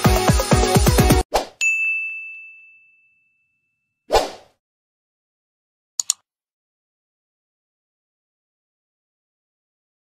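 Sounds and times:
electronic music: 0:00.0 - 0:01.2
bright bell-like ding: 0:01.6 - 0:03.9.

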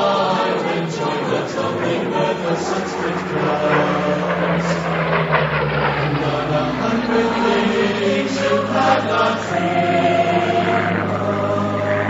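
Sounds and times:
choir singing: 0:00.0 - 0:05.1, 0:05.9 - 0:12.0
aircraft engine drone: 0:00.0 - 0:12.0.

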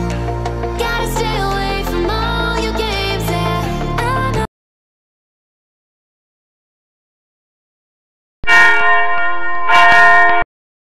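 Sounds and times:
ringing bell chime: 0:08.5 - 0:10.4.

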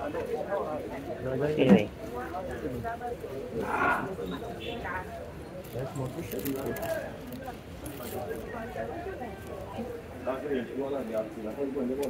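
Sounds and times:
city street hum: 0:00.0 - 0:12.0.

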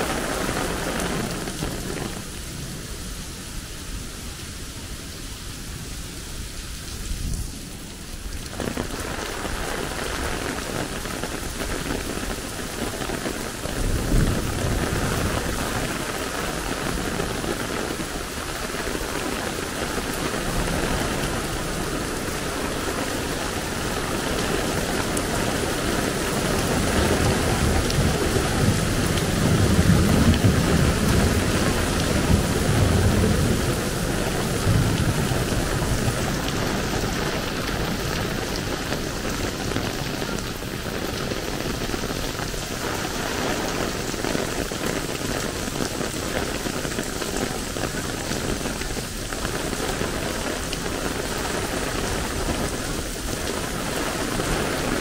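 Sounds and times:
heavy rain pouring: 0:00.0 - 0:55.0.

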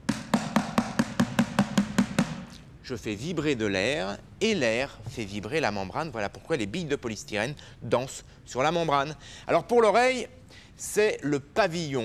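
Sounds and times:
stick knocking plastic dustbin: 0:00.0 - 0:02.5.

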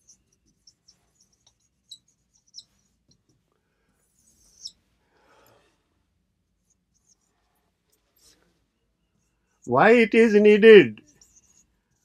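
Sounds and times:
marker pen writing on whiteboard: 0:11.0 - 0:12.0.

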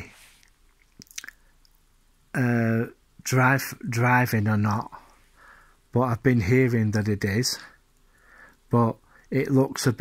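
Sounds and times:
mouth clicks and lip smacks: 0:00.4 - 0:01.8.

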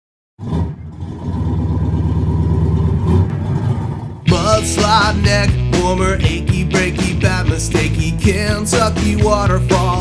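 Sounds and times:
car engine running: 0:00.4 - 0:10.0.

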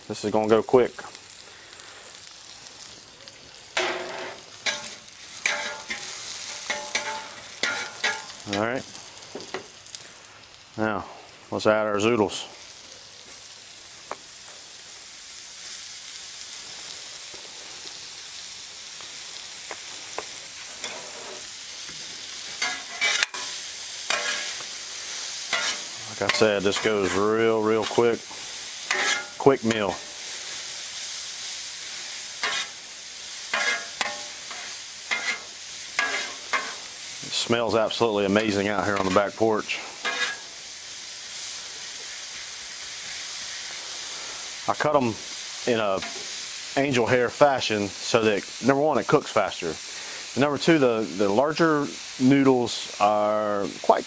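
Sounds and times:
vegetables sizzling on griddle: 0:00.0 - 0:54.0
metal spatula scraping griddle: 0:03.8 - 0:08.6, 0:20.6 - 0:21.6, 0:22.4 - 0:30.6, 0:31.9 - 0:32.8, 0:33.4 - 0:36.9, 0:38.4 - 0:40.6, 0:46.0 - 0:46.4.

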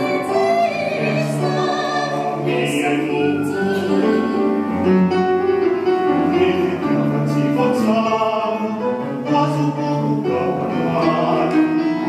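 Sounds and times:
theatrical song with accompaniment: 0:00.0 - 0:12.0.

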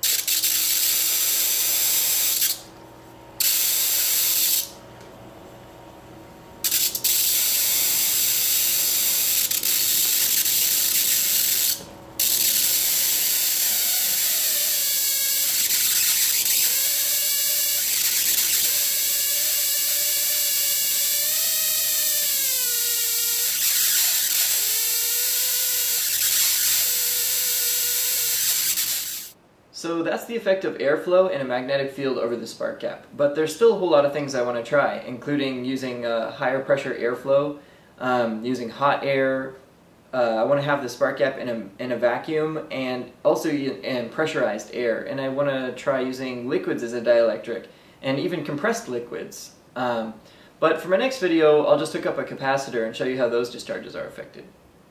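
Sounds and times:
spark gap crackling buzz: 0:00.0 - 0:02.7, 0:03.3 - 0:05.1, 0:06.6 - 0:29.4.

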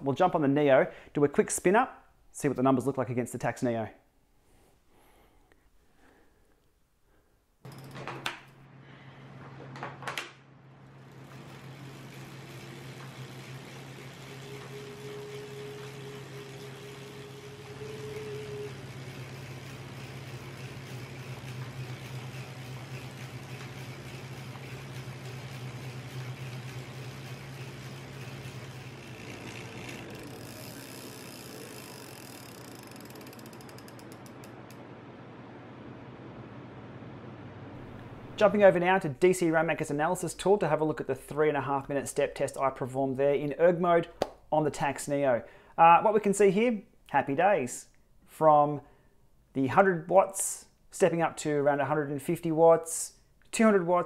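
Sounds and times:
bike chain and drivetrain running: 0:07.7 - 0:08.2, 0:11.0 - 0:34.8.

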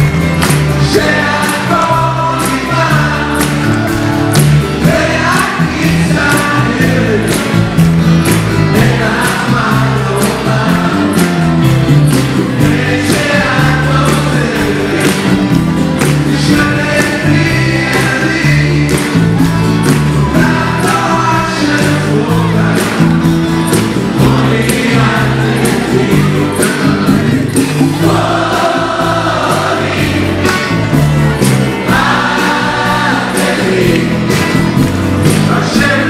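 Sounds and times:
bass line: 0:00.0 - 0:36.0
drum beat: 0:00.0 - 0:36.0
guitars playing: 0:00.0 - 0:36.0
live band music: 0:00.0 - 0:36.0
several voices singing: 0:00.4 - 0:07.6, 0:08.3 - 0:36.0.

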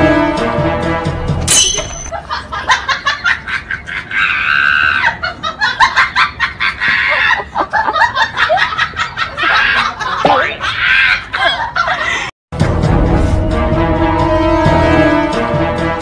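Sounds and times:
people laughing and shrieking: 0:02.1 - 0:12.3.

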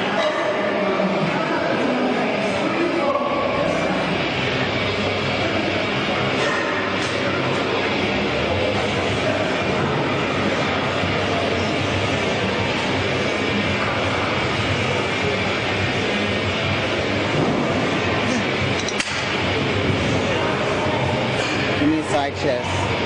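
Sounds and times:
indistinct voices: 0:00.0 - 0:23.0
rumbling gym din: 0:03.4 - 0:21.8.

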